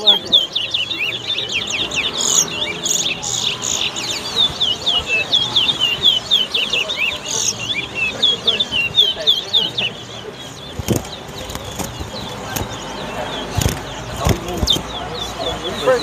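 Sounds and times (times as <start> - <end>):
finches singing whistled notes: 0.0 - 16.0.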